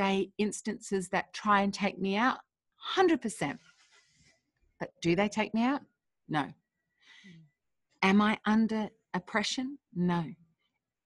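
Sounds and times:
woman speaking: 0:00.0 - 0:03.6, 0:04.8 - 0:06.6, 0:08.0 - 0:10.4
woman breathing in: 0:06.9 - 0:07.5.

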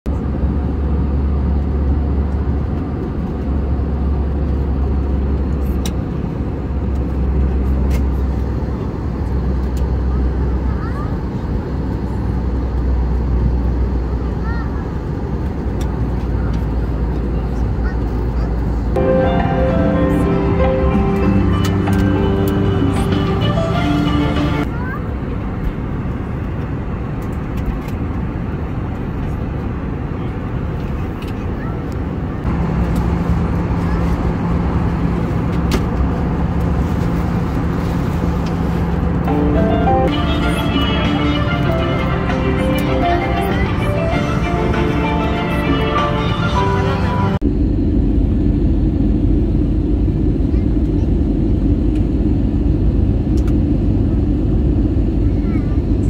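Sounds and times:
airliner cabin noise: 0:00.1 - 0:56.0
music with held notes: 0:19.0 - 0:24.7, 0:39.3 - 0:47.4.

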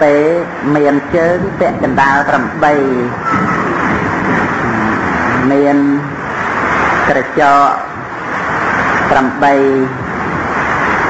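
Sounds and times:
loud steady rushing noise: 0:00.0 - 0:11.0
man's voice: 0:04.6 - 0:05.4.

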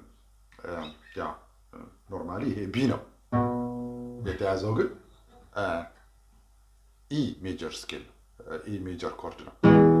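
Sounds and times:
acoustic guitar note ringing: 0:03.3 - 0:04.4
man's voice: 0:04.2 - 0:05.0.

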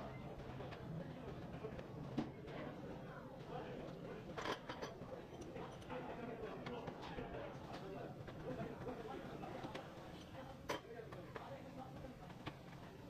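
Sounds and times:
workshop background noise: 0:00.0 - 0:13.0.

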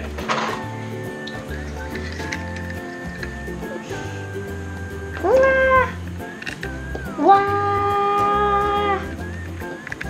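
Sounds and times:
music with sustained notes and bass: 0:00.0 - 0:10.0.

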